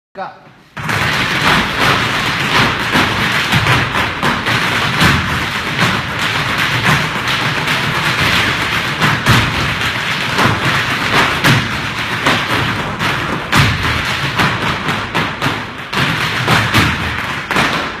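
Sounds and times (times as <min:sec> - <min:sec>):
dance shoes tapping on floor: 0:00.4 - 0:18.0.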